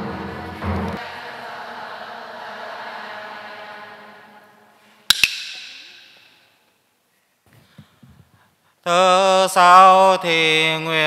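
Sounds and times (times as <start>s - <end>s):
sung chant: 0.0s - 5.0s
wooden clapper clacks: 5.1s - 6.3s.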